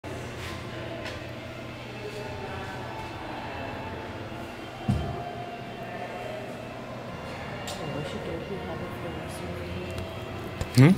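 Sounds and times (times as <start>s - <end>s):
faint murmur of voices: 0.1s - 10.9s.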